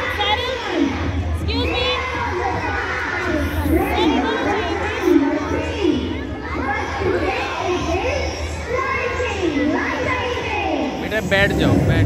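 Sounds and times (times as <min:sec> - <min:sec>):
children shouting and cheering: 0:00.0 - 0:11.2
steady low rumble: 0:11.1 - 0:12.0.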